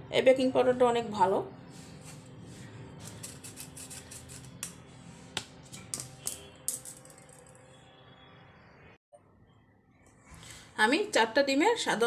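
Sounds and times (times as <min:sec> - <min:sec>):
spoon scraping metal mesh sieve: 0:03.0 - 0:04.7.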